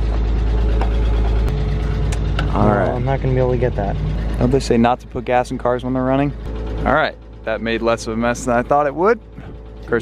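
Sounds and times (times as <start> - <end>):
car engine idling with lifter knock: 0.0 - 10.0.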